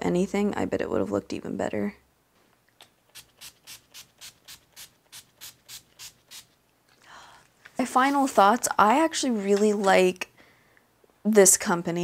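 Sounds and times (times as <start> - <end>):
intake of breath: 7.0 - 7.6, 10.4 - 10.9.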